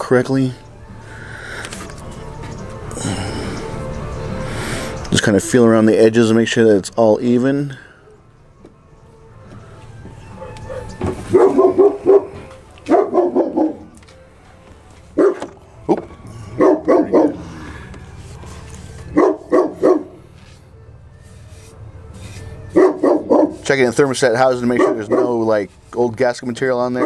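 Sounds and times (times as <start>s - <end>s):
dog barking: 10.4s - 13.9s, 15.2s - 15.5s, 16.6s - 17.4s, 19.2s - 20.2s, 22.7s - 23.6s, 24.8s - 25.5s.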